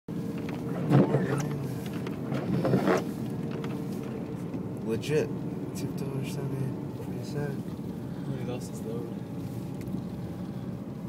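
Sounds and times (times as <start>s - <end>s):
vehicle cabin drone: 0.1s - 11.0s.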